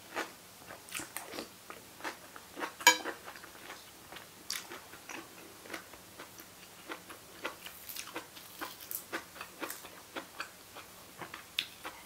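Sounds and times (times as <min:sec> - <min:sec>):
chewing crisp salad greens: 0:00.1 - 0:12.0.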